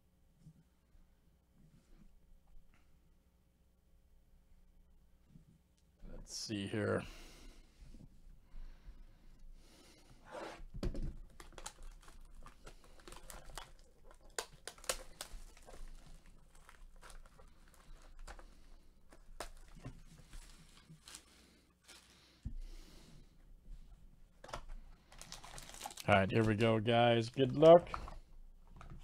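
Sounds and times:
plastic shrink-wrap tearing: 11.2 - 18.4, 19.1 - 22.1, 25.1 - 27.6.

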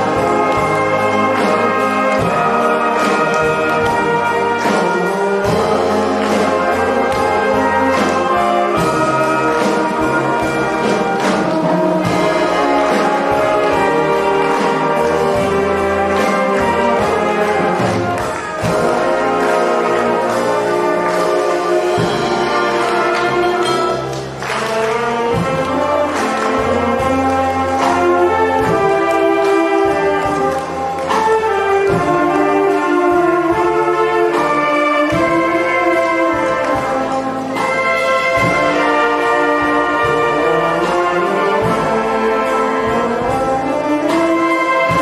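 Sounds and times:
brass band playing: 0.0 - 45.0
sharp percussion strikes: 0.0 - 45.0.

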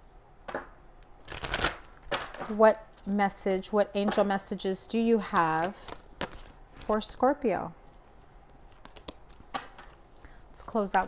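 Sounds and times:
cards shuffled by hand: 8.1 - 10.1.

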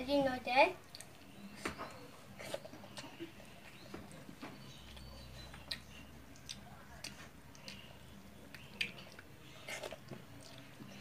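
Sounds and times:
child chewing: 0.8 - 11.0.

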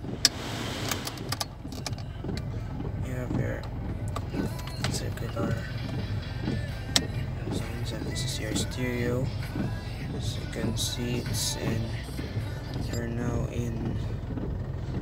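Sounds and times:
low cabin hum: 0.0 - 15.0
plastic dashboard knob clicks: 0.2 - 2.5, 3.3 - 7.6.

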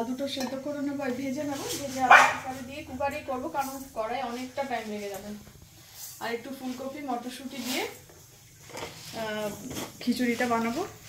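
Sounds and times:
woman speaking: 0.0 - 5.5, 6.2 - 8.0, 9.1 - 11.0.

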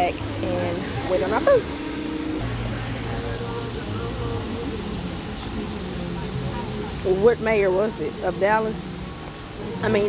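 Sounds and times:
constant hum: 0.0 - 10.0
faint indistinct voices: 0.0 - 10.0.

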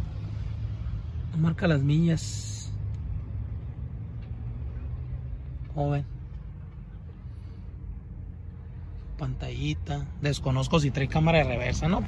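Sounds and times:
low rumble of motor traffic: 0.0 - 12.0.

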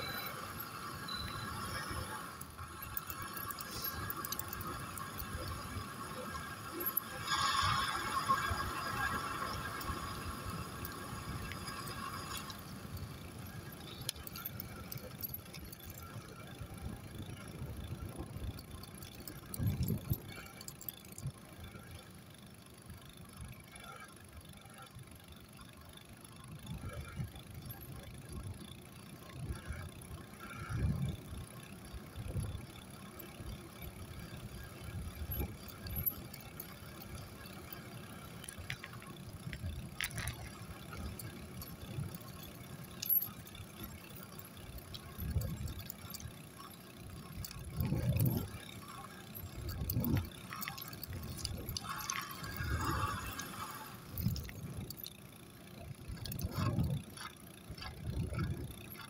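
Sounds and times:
small wheels rolling on asphalt: 0.0 - 59.0.

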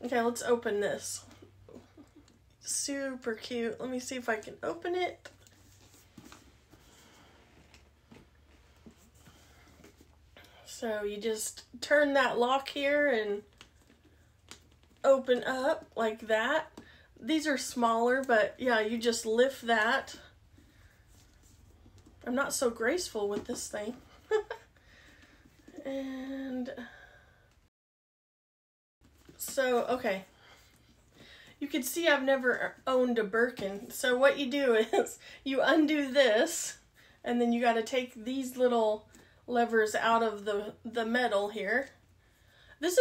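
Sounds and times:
woman laughing: 1.7 - 2.4, 24.1 - 24.7.

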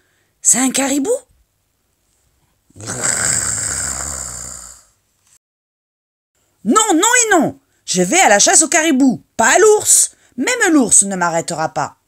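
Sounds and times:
person growling like a bear: 2.7 - 5.0.

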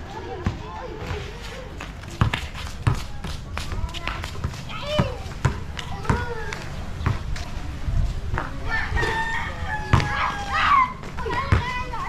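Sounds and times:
basketball bouncing on concrete: 0.3 - 7.5, 9.9 - 10.2, 11.0 - 12.0
rooster crowing: 8.7 - 10.9.

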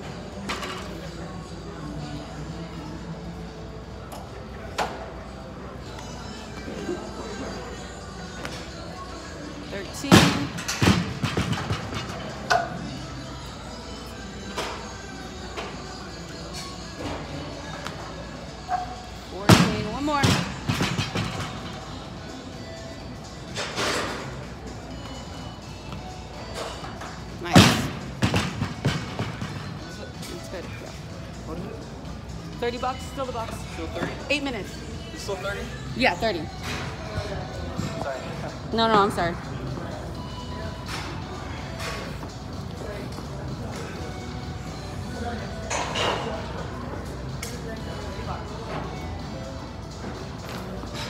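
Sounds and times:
gym music: 6.1 - 51.0.

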